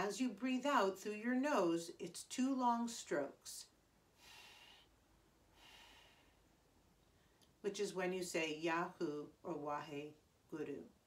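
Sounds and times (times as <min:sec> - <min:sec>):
woman breathing out through nose: 0:04.2 - 0:06.5.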